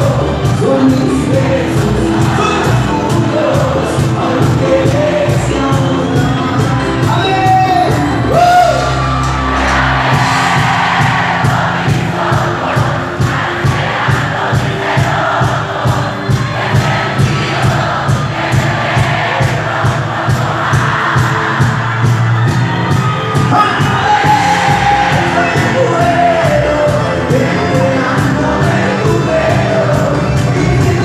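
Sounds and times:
accordion: 0.0s - 31.0s
crowd singing and cheering: 0.0s - 31.0s
live cumbia band playing: 0.0s - 31.0s.

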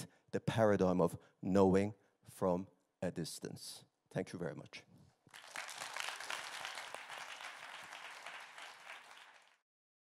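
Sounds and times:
audience applauding: 5.3s - 9.6s.

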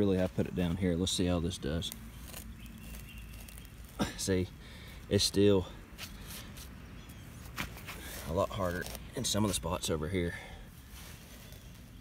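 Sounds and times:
screwdriver scraping in soil: 1.5s - 4.0s, 7.8s - 9.8s.

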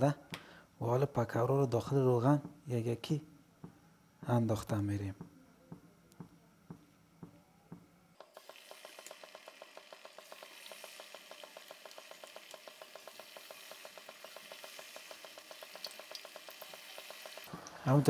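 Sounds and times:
batter frying in hot oil: 8.2s - 18.0s.

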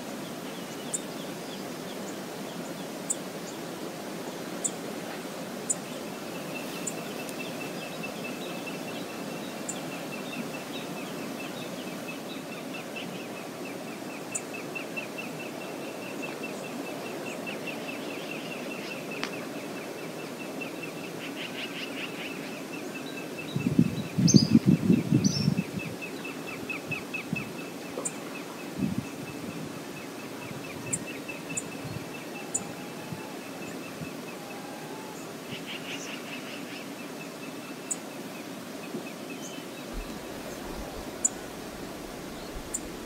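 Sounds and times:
river flowing: 0.0s - 23.5s, 26.0s - 43.0s.

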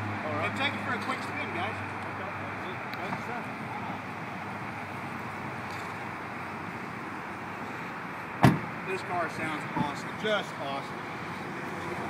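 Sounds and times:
car door shutting: 8.4s - 8.8s.

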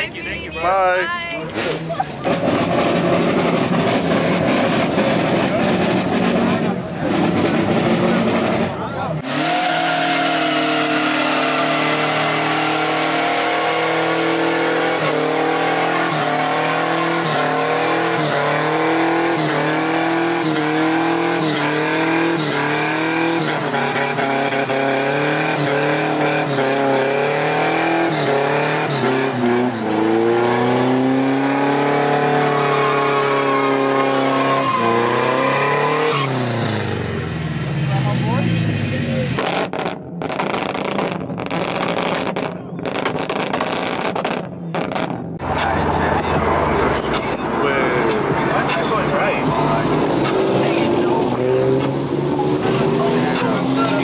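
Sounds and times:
car engine revving: 1.4s - 54.0s
tires spinning: 1.5s - 54.0s.

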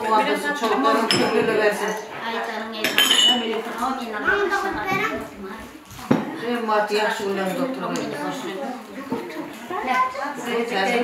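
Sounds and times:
background chatter: 0.0s - 11.0s
tableware clatter: 0.6s - 2.2s, 2.8s - 3.8s
glasses clinking: 1.0s - 2.0s, 2.8s - 3.5s.

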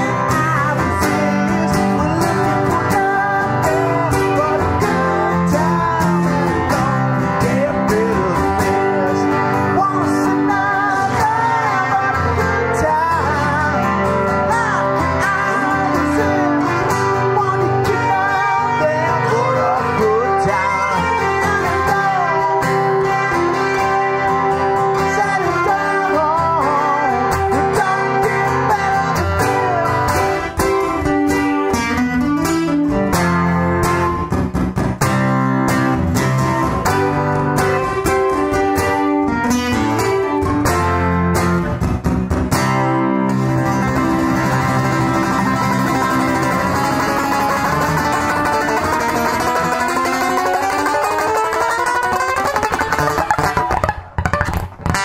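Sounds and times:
lead acoustic guitar solo: 0.0s - 55.0s
strummed acoustic rhythm guitar: 0.0s - 55.0s.

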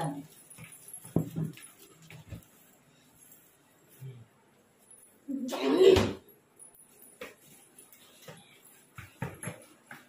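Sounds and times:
taps on tiled floor: 9.0s - 10.0s.

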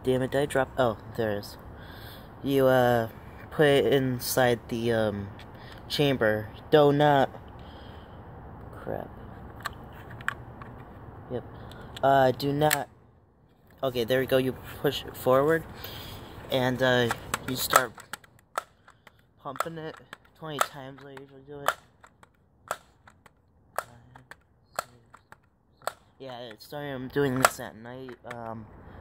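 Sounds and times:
air rifle pump lever clacking: 17.0s - 26.6s, 27.2s - 28.5s.

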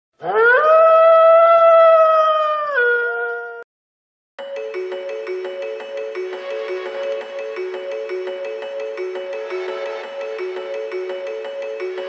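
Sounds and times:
dog howling: 0.2s - 3.6s.

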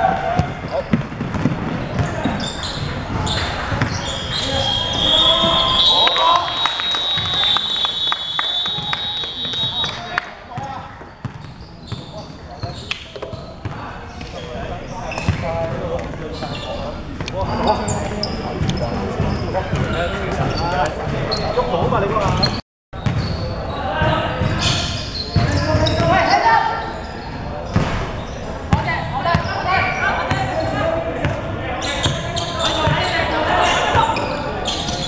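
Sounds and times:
players shouting and chattering: 0.0s - 35.0s.

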